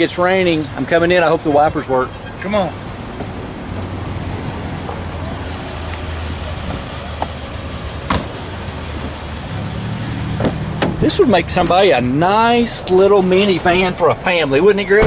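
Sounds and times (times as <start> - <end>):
car engine idling: 0.1 - 14.9
car door clicks: 8.0 - 8.4, 10.4 - 11.0.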